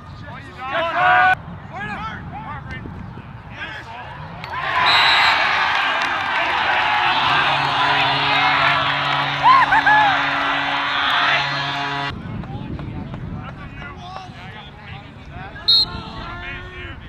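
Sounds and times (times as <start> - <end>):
crowd cheering: 4.1 - 12.2
steady low tone: 6.5 - 12.4.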